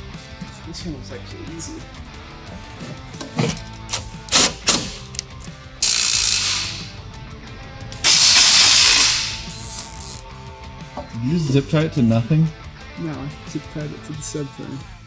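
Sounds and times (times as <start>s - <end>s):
sharp clicks: 3.9s - 6.9s
zip ties ratcheting: 3.9s - 6.9s, 8.1s - 10.3s.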